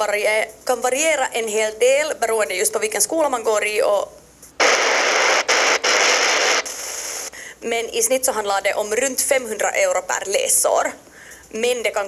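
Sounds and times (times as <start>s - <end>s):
radio static hiss: 4.6s - 7.4s.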